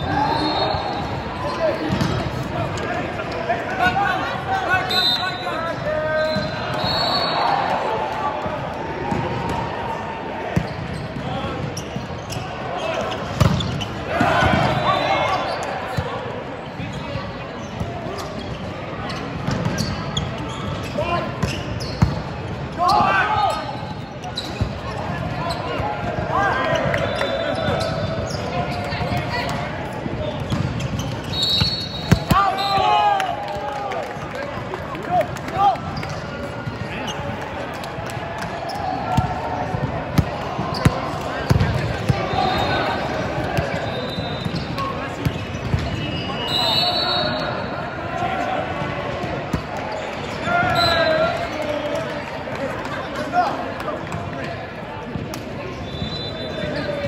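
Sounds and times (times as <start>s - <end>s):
sneakers squeaking on court: 0.0s - 3.5s, 4.9s - 7.4s, 10.5s - 33.0s, 38.5s - 47.7s
players shouting: 0.0s - 11.8s, 12.4s - 16.4s, 31.3s - 52.2s
volleyball hits: 13.2s - 14.8s, 30.4s - 33.7s, 38.0s - 46.0s.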